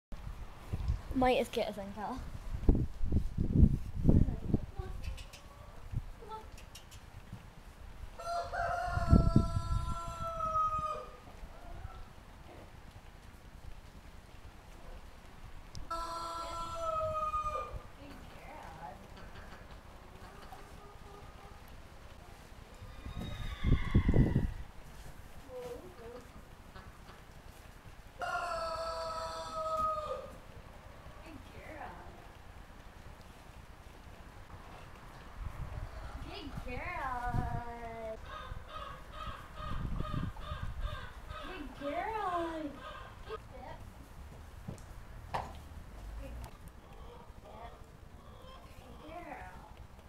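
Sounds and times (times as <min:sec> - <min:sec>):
rooster crowing: 0:08.2 - 0:11.2, 0:15.9 - 0:17.8, 0:22.9 - 0:24.6, 0:28.2 - 0:30.4.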